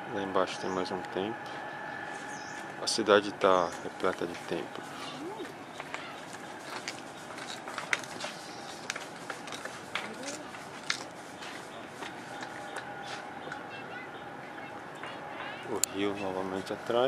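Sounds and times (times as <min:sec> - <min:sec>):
outdoor background hum: 0:00.0 - 0:17.0
faint voices: 0:02.8 - 0:06.8, 0:10.0 - 0:10.7.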